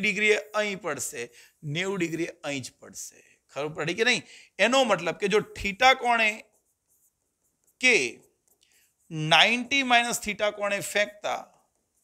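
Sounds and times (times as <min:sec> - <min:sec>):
man speaking: 0:00.0 - 0:06.6, 0:07.7 - 0:08.4, 0:09.0 - 0:11.7.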